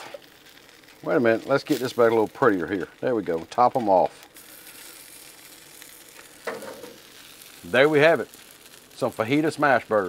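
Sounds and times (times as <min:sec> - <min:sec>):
food sizzling on a griddle: 0:00.0 - 0:10.0.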